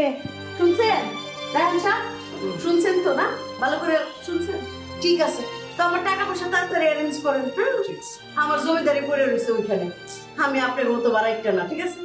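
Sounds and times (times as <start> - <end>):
woman speaking: 0.0 - 12.0
sustained music tones: 0.2 - 12.0.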